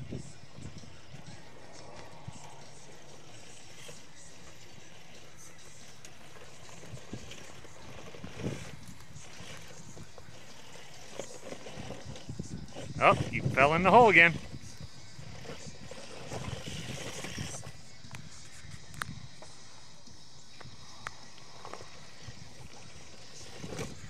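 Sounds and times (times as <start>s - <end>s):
toy car drivetrain whirring: 0.0s - 24.0s
tyres scraping and knocking on stone: 1.2s - 17.7s.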